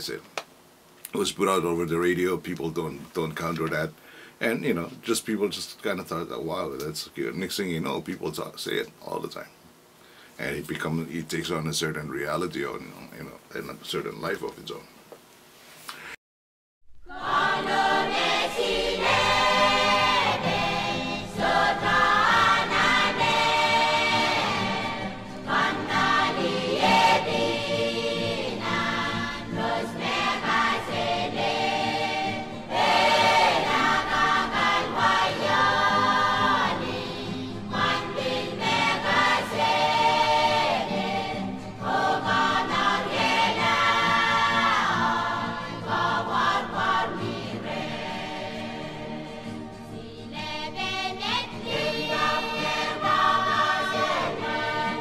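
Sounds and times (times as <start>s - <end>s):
choir singing: 17.0s - 55.0s.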